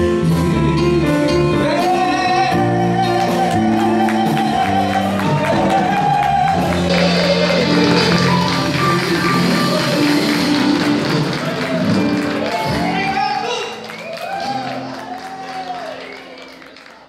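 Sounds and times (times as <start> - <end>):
live band with guitars and drums: 0.0 - 17.0
audience clapping: 3.1 - 17.0.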